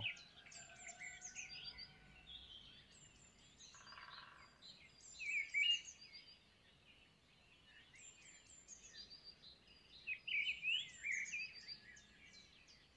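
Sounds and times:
birds chirping and warbling: 0.0 - 12.9.

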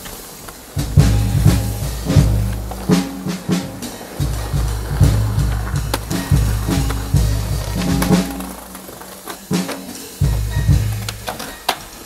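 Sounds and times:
jazz drum kit: 0.0 - 12.0
skateboard clacks: 0.0 - 12.0
skateboard wheels rolling on pavement: 0.0 - 12.0.

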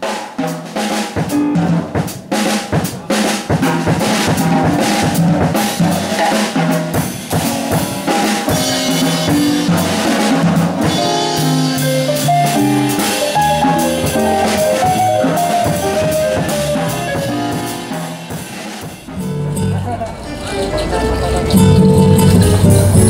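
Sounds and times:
upbeat band music: 0.0 - 23.0.

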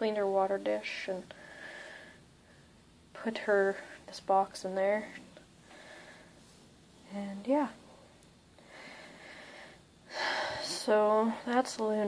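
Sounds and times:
faint breathy hiss: 0.2 - 11.7.

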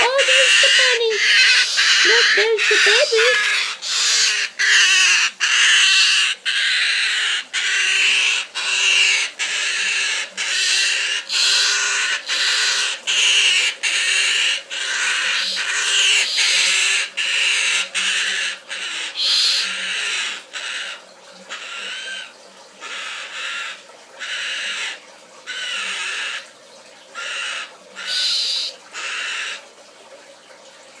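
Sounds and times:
cockatoo calling: 0.0 - 26.5, 27.2 - 29.6.

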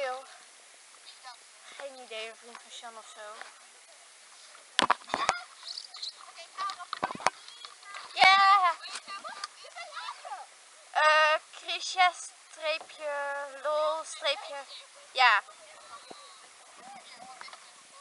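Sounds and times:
girls calling out: 5.0 - 18.0.

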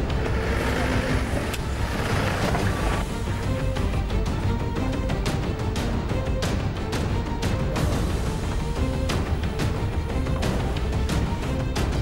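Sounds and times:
car running on rough ground: 0.0 - 3.4.

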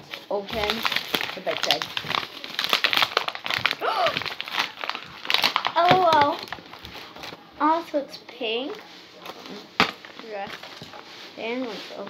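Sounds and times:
paper wrapping crumpling and tearing: 0.0 - 7.4, 9.2 - 12.0.

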